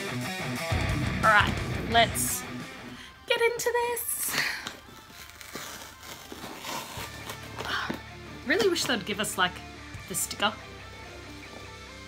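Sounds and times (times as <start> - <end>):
packaging rustling and crinkling: 4.6 - 8.0.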